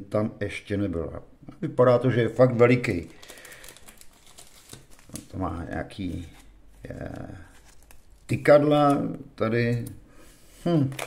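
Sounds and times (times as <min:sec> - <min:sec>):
trading cards rustling and clicking: 0:02.8 - 0:05.4, 0:06.0 - 0:09.2.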